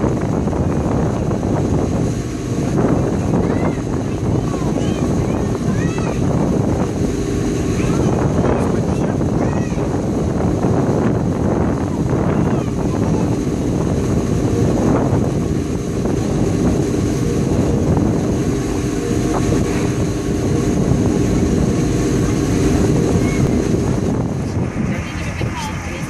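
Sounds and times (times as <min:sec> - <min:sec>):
boat diesel engines droning: 0:00.0 - 0:26.0
wind buffeting microphone: 0:00.0 - 0:26.0.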